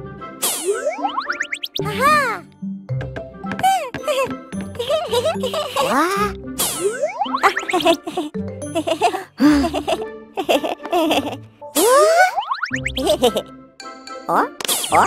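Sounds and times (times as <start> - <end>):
playful cartoon music: 0.0 - 15.0.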